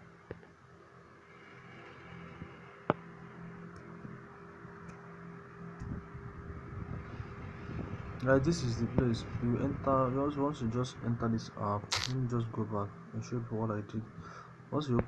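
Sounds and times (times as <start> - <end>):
low mechanical hum: 0.0 - 15.0
rumble: 1.2 - 4.4, 5.6 - 11.3
sharp click: 11.9 - 12.2.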